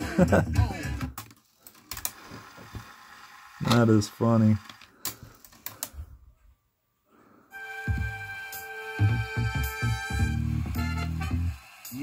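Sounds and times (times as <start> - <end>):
rap music from cassette: 0.0 - 4.7, 7.7 - 12.0.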